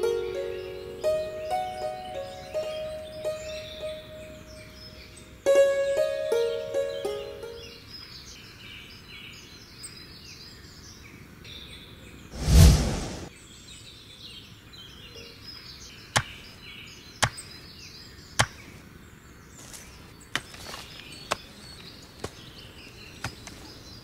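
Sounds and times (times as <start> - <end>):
plucked-string film music: 0.0 - 7.8
birds chirping softly: 0.0 - 12.3, 13.3 - 24.0
loud swell of noise: 12.4 - 13.3.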